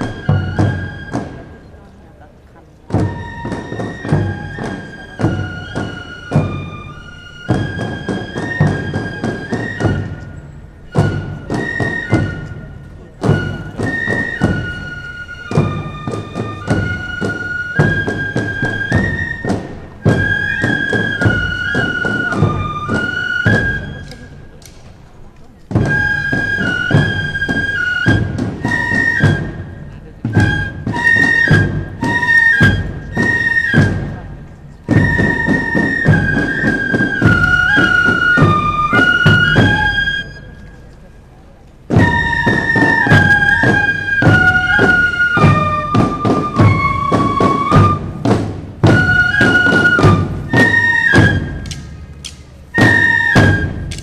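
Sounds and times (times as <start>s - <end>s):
snare drum strokes: 0.0s - 1.4s, 2.9s - 25.0s, 25.7s - 34.2s, 34.8s - 40.6s, 41.9s - 54.0s
fife melody: 0.0s - 2.0s, 2.6s - 54.0s.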